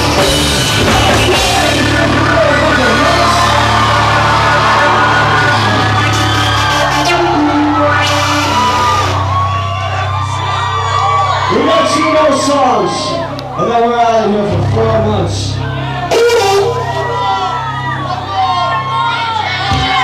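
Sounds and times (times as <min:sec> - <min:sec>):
crowd cheering and shouting: 0:00.0 - 0:20.0
live rock band playing: 0:00.0 - 0:20.0.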